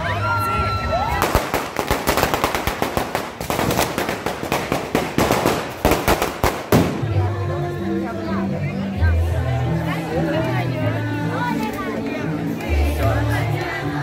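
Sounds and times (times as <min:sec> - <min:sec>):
firecrackers banging: 0:01.2 - 0:07.3.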